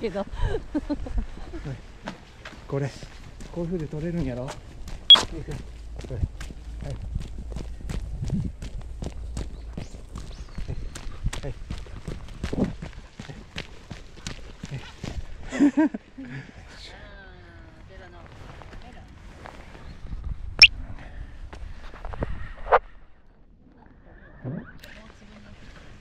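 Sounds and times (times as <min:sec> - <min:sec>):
footsteps on paved path: 0:00.7 - 0:15.6.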